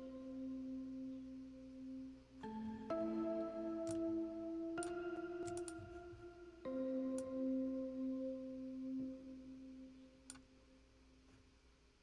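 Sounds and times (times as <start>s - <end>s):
keyboard sustained chords: 0.0s - 10.7s.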